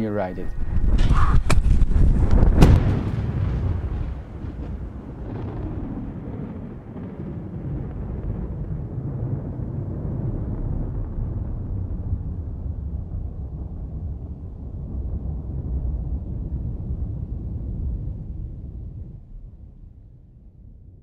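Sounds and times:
sharp booming hits: 0.0s - 8.1s
long low rumble: 0.0s - 21.0s.

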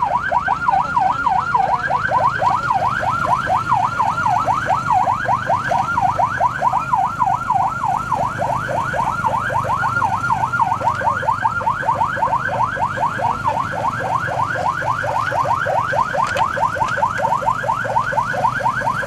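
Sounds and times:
electronic vehicle siren: 0.0s - 19.0s.

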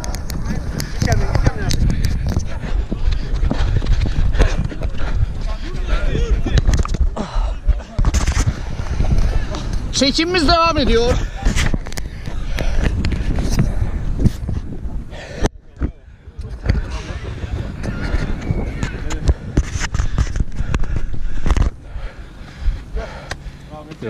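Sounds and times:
handling rumble: 0.0s - 24.0s.

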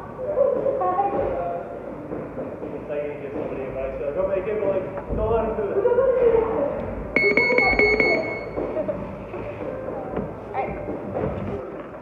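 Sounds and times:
round timer beeping rapidly: 7.2s - 8.6s.

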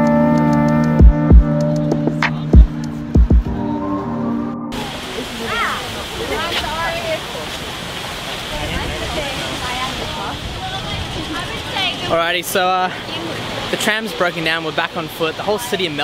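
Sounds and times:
crowd chatter: 1.8s - 7.7s, 8.5s - 16.0s
fountain water jets rushing: 4.7s - 16.0s.

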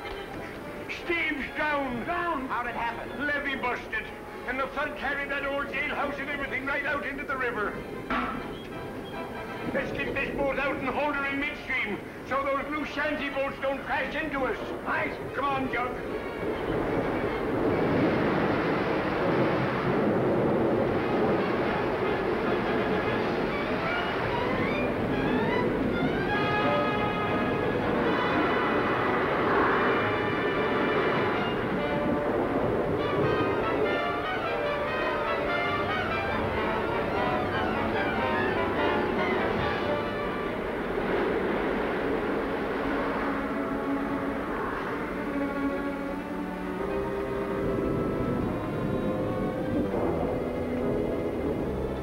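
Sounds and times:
dramatic orchestral music: 0.0s - 52.0s
rushing flood water: 0.0s - 52.0s.

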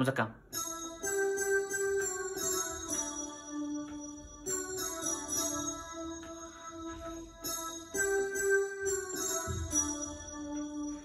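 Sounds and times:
electronic keyboard melody: 0.4s - 11.0s.

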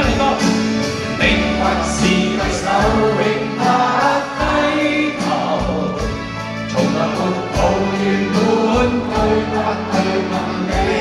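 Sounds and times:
crowd singing chorus: 0.0s - 11.0s
drum hits: 0.0s - 11.0s
live pop song by band: 0.0s - 11.0s.

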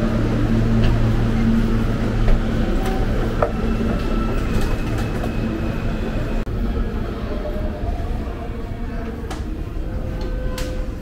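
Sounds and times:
low rumble of subway station: 0.0s - 11.0s.

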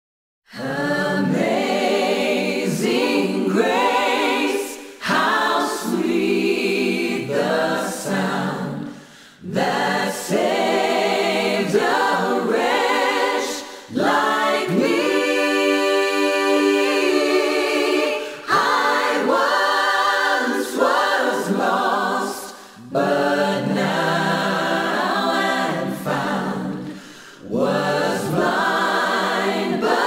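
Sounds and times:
a cappella choir singing: 0.5s - 30.0s.

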